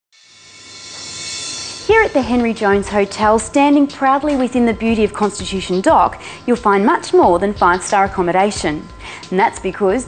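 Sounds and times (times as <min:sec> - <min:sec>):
sustained high chord: 0:00.2 - 0:05.2
woman speaking: 0:01.9 - 0:10.0.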